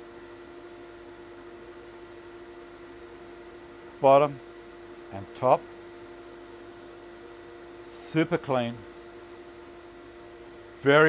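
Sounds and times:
steady mechanical hum: 0:00.0 - 0:11.0
man talking: 0:04.0 - 0:04.4, 0:05.1 - 0:05.6, 0:07.8 - 0:08.8.

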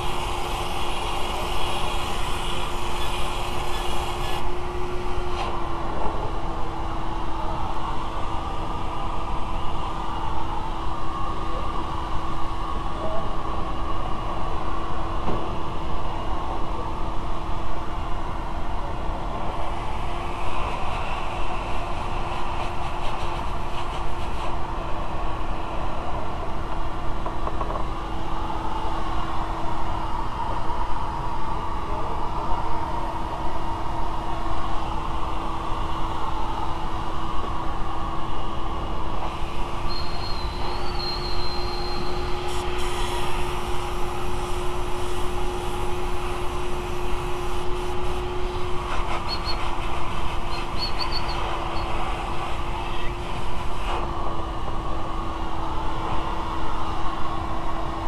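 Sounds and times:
hissing rush: 0:37.7 - 0:54.4.

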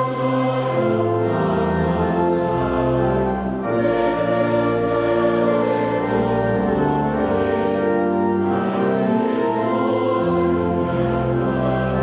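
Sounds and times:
choir singing a hymn: 0:00.0 - 0:12.0
pipe organ: 0:00.0 - 0:12.0.

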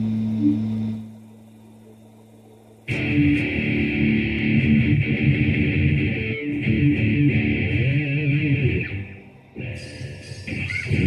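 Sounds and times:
faint hum: 0:00.0 - 0:11.0
electric guitar strum: 0:02.9 - 0:11.0.

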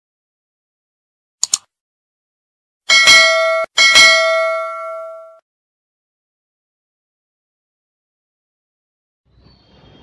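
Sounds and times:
notification bell ding: 0:02.9 - 0:05.4.

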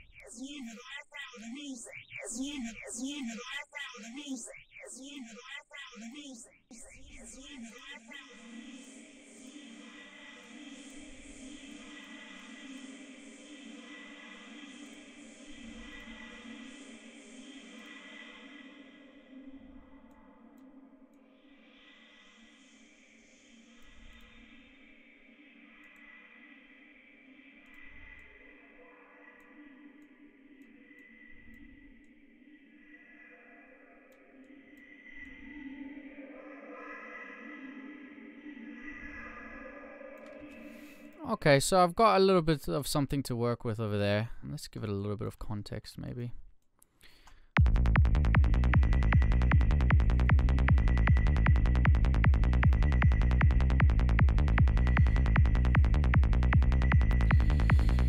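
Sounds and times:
faint low pulses: 0:47.6 - 0:58.0.

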